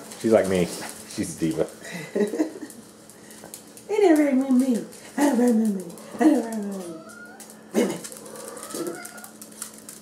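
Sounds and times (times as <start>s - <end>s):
dog claws clicking on hardwood floor: 2.6s - 10.0s.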